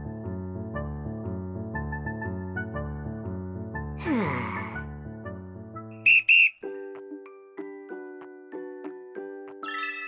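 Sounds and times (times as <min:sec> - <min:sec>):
short sharp whistle toots: 0:06.0 - 0:06.7
bell-like tune: 0:09.6 - 0:10.0.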